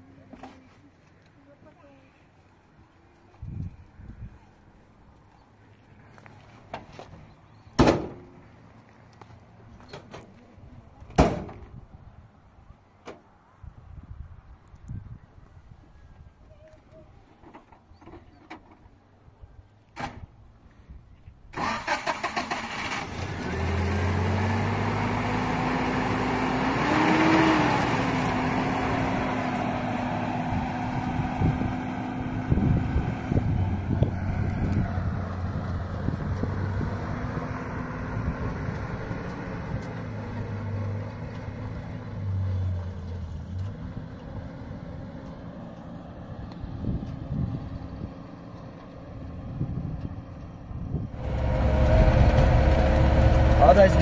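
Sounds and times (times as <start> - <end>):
knocks on dirt track: 7.8 - 8.4
pickup truck engine: 21.5 - 54.0.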